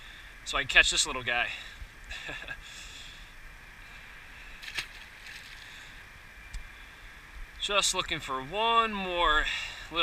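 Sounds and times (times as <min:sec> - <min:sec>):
small tick: 0:06.5 - 0:06.7.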